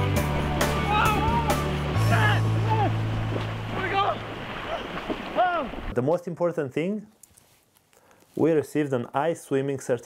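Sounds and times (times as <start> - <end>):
people splashing in water: 0.0 - 6.0
people yelling: 0.4 - 5.9.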